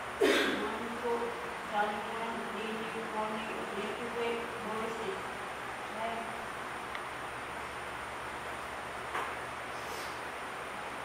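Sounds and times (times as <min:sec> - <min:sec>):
woman reciting aloud: 0:00.2 - 0:06.5.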